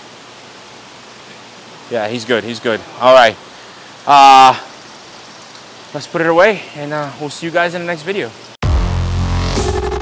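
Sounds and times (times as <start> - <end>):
aquarium water hiss: 0.0 - 8.6.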